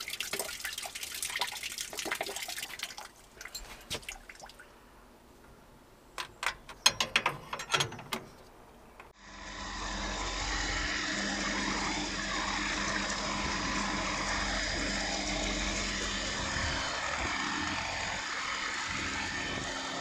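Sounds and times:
electric pump humming: 9.2s - 20.0s.

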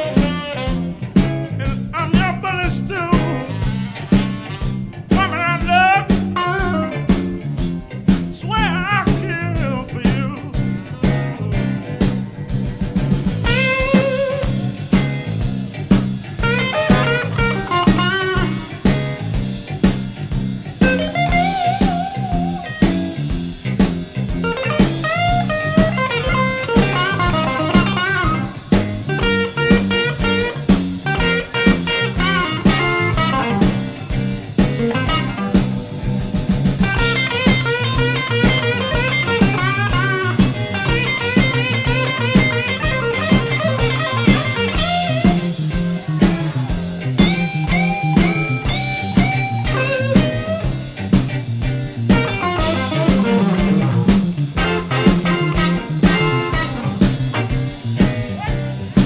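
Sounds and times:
bass line: 0.0s - 59.0s
drums: 0.0s - 59.0s
lead electric guitar solo: 0.0s - 59.0s.

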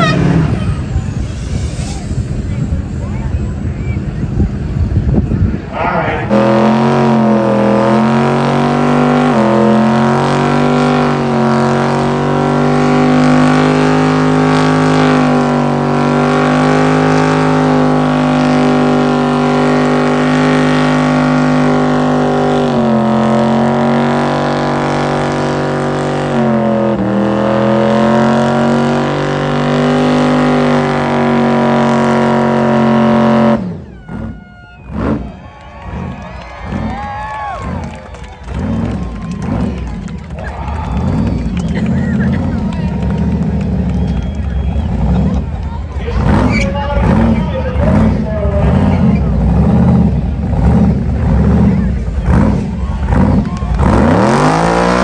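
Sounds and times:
truck engine revving high: 0.0s - 55.0s.

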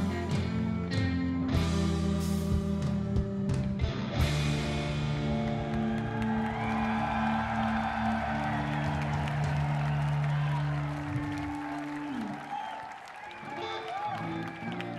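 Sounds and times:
electric guitars and bass chord: 0.0s - 11.8s
crowd cheering and applauding: 4.5s - 14.9s.

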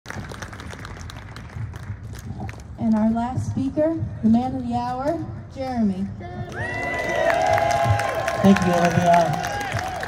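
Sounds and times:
audience applause: 6.6s - 10.0s.

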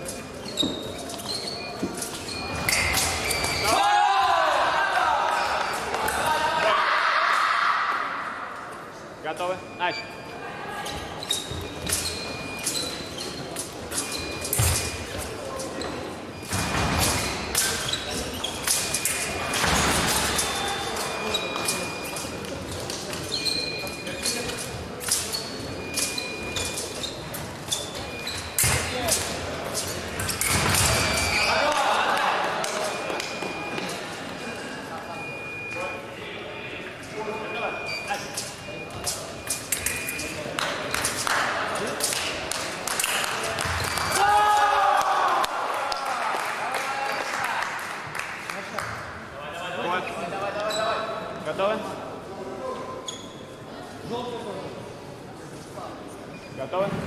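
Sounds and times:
short electronic beeps: 9.3s - 10.4s, 11.3s - 15.1s, 25.4s - 29.1s, 32.8s - 34.1s, 34.9s - 36.2s, 37.1s - 40.4s
fencing blades clicking: 38.3s - 43.6s.

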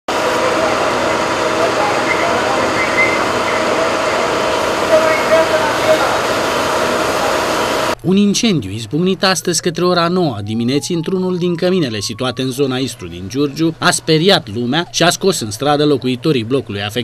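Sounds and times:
vehicle engines idling: 0.1s - 8.0s
faint voices: 0.2s - 8.0s, 9.9s - 13.4s.

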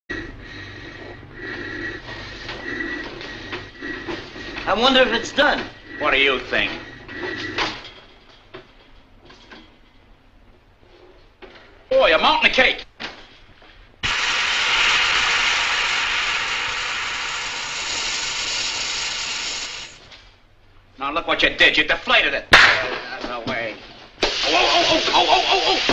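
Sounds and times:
oven hissing and wheezing: 0.1s - 8.3s, 14.0s - 20.2s, 24.2s - 25.9s
steady high whine: 0.1s - 10.0s
low hum: 0.1s - 11.4s
gas hissing from punctured cake: 14.0s - 20.1s, 24.2s - 25.9s.

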